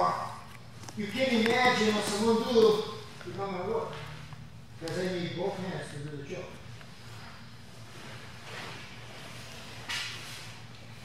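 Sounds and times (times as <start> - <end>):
low room hum: 0.0 - 11.0
bodies shifting on a mat: 6.9 - 10.6.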